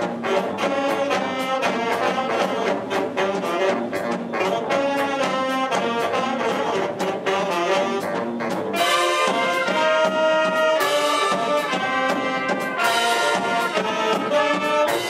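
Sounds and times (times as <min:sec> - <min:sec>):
jazz big band playing swing: 0:00.0 - 0:15.0.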